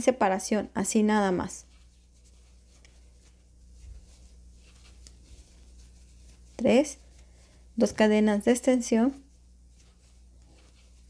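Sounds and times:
low steady hum: 0.0 - 11.0
crochet hook rustling yarn: 1.1 - 11.0.

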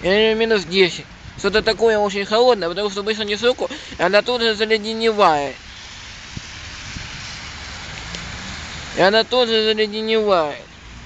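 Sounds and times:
wet outdoor hiss: 0.0 - 11.0.

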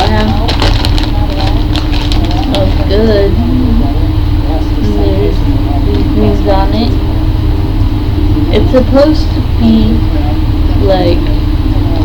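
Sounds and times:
short crackles: 0.0 - 2.8
loud low rumble and hum: 0.0 - 12.0
low half-voiced talking: 0.0 - 12.0.

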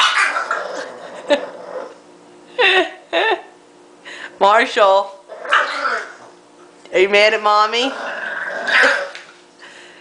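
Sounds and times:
puppy grumbling: 0.0 - 2.0, 5.2 - 6.4, 7.7 - 9.3.

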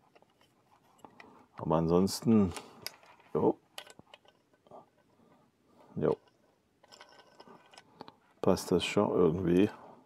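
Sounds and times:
plastic parts clicking and rattling: 0.0 - 1.6, 2.2 - 5.2, 6.0 - 8.2.

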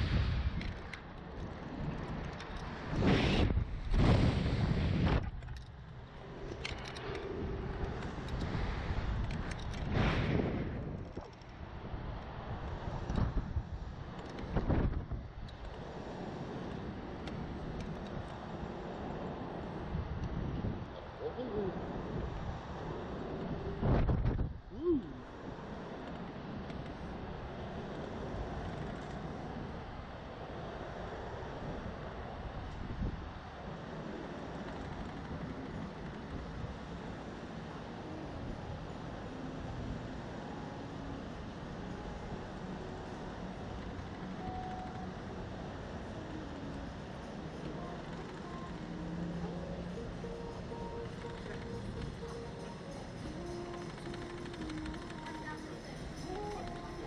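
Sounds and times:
wind rushing over microphone: 0.0 - 44.4.

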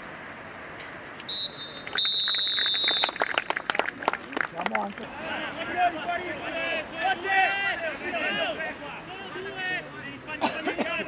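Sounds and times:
referee's whistle blasts: 1.3 - 3.2
scattered handclaps: 1.8 - 5.1.

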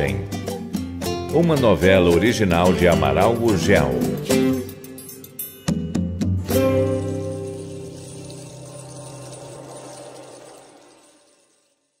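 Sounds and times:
acoustic guitar chord ringing: 5.6 - 11.0.

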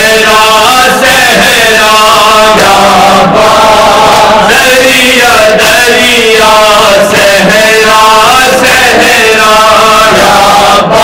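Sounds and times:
men chanting a lament: 0.0 - 11.0.

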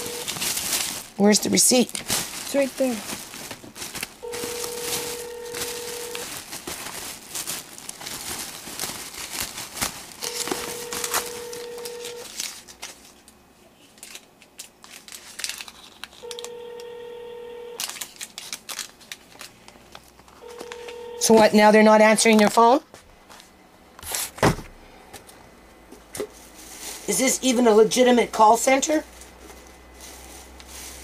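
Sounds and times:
telephone ringback tone: 0.0 - 0.3, 4.2 - 6.2, 10.2 - 12.3, 16.2 - 17.8, 20.4 - 21.6
plastic bag crinkling: 0.0 - 16.6, 17.8 - 21.6.

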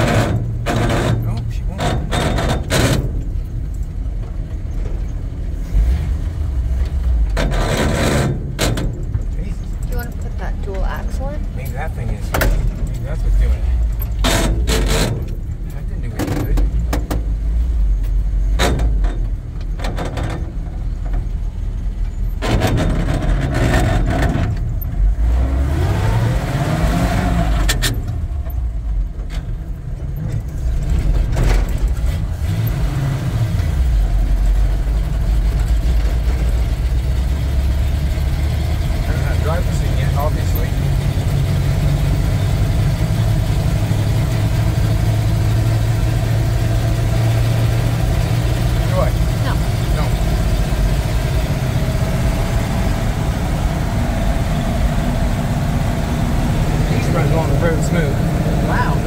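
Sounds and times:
truck engine shifting gears: 0.0 - 59.0.

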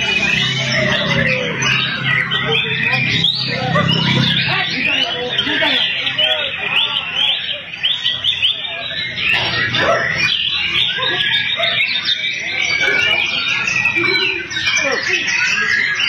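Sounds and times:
people's voices: 0.0 - 16.0
songbirds singing: 0.0 - 16.0.

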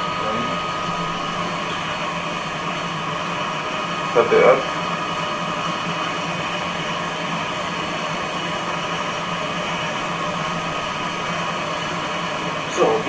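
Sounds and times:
rotor whirring with steady tones: 0.0 - 13.0.

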